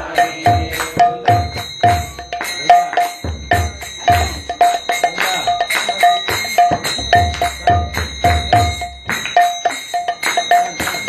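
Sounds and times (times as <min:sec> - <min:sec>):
hand drum played in quick rhythm: 0:00.4 - 0:11.0.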